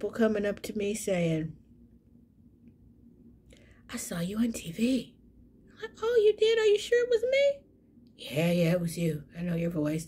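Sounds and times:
woman speaking: 0.0s - 1.6s, 3.9s - 10.0s
faint low hum: 0.0s - 10.0s.

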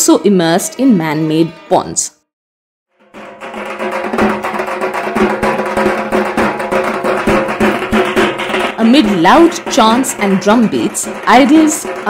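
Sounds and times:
drums beaten in fast rhythm: 2.9s - 12.0s.

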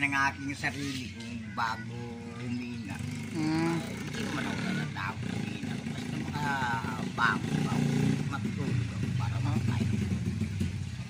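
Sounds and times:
vehicle engine running: 1.0s - 11.0s.

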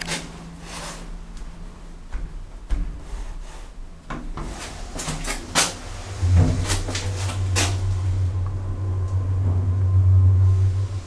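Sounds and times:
clunks and rattles: 2.0s - 3.2s, 4.1s - 10.9s
lift doors closing: 4.2s - 11.0s.

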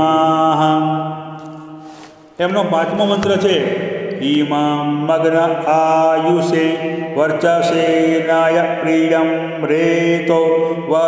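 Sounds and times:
man chanting: 0.0s - 1.3s, 2.4s - 11.0s.

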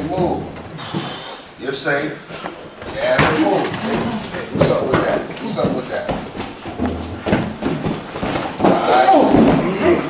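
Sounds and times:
bodies thudding on foam mats: 2.8s - 10.0s.

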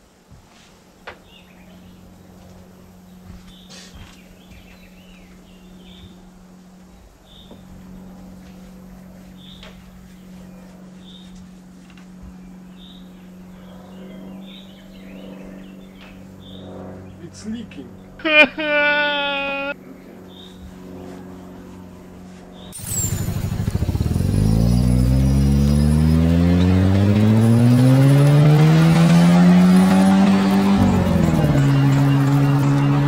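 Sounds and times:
small birds chirping: 3.0s - 6.3s, 6.9s - 7.6s, 9.3s - 11.5s, 12.4s - 18.2s, 19.6s - 21.8s, 22.4s - 33.0s
steady low hum: 19.7s - 33.0s.

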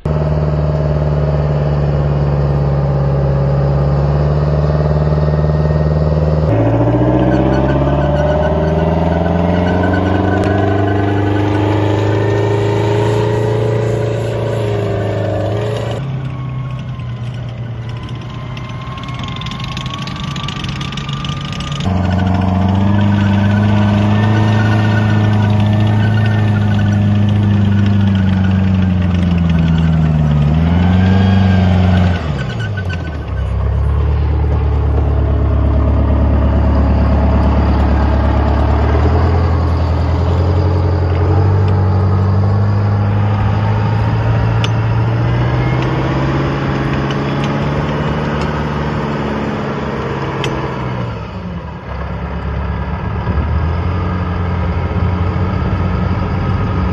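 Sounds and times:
diesel engine revving: 0.0s - 56.9s.

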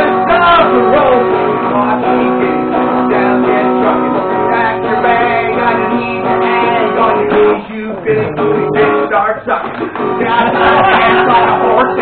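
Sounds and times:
guitar strumming chords: 0.0s - 12.0s.

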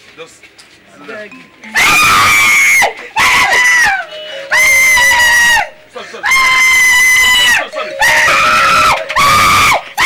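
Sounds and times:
woman screaming: 1.7s - 10.0s.

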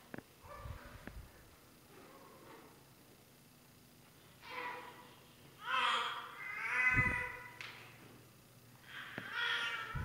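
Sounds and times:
high-pitched whining cry: 5.6s - 7.6s, 8.9s - 10.0s.

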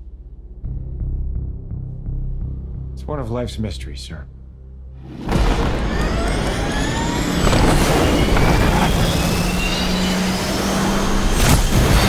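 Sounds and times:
jet engine spooling up: 5.3s - 12.0s.

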